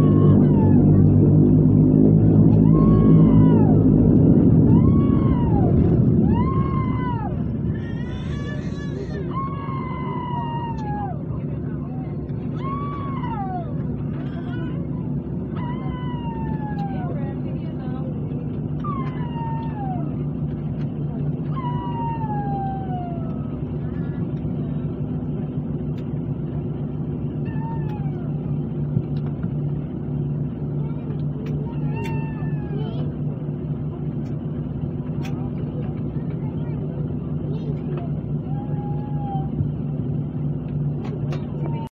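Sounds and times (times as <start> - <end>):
short falling whines: 0.0 - 11.3, 18.7 - 23.8
aircraft engines droning: 0.0 - 41.9.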